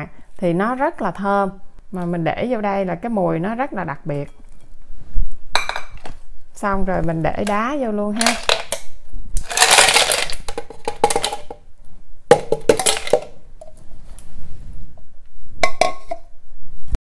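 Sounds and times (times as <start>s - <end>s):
ice cubes clinking against glass: 9.4s - 11.5s, 12.5s - 13.3s.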